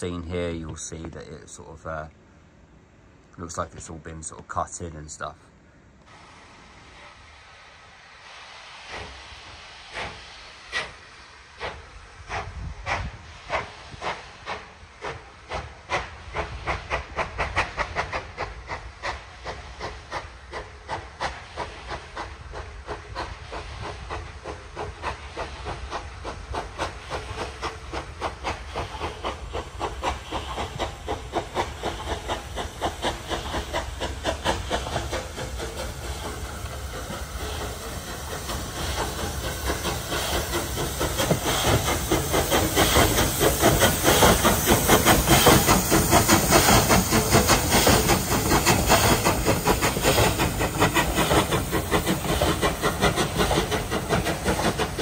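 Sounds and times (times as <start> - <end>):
steam hissing: 6.1 - 55.0
steam locomotive chuffing: 6.2 - 55.0.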